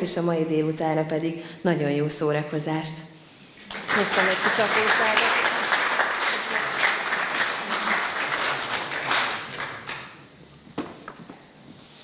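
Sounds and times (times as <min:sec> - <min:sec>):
audience applauding: 0:03.7 - 0:10.2.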